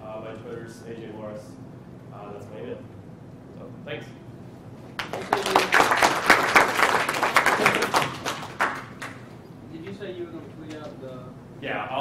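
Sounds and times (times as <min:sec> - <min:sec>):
audience applauding: 0:05.0 - 0:09.3.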